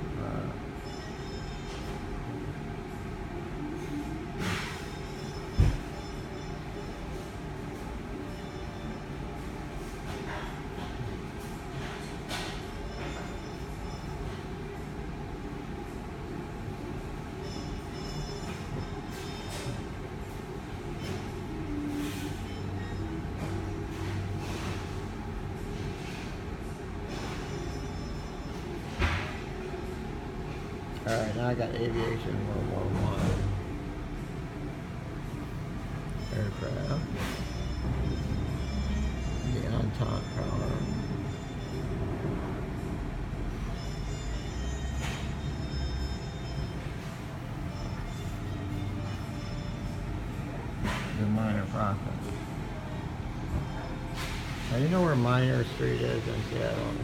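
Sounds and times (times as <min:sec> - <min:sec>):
faint background music: 0:00.0 - 0:57.0
low mechanical rumble with hum: 0:00.0 - 0:57.0.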